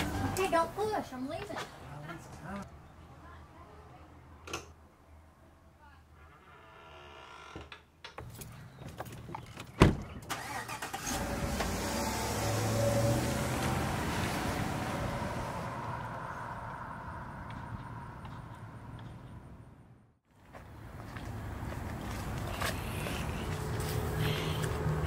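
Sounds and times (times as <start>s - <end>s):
pickup truck driving off: 10.3s - 17.4s.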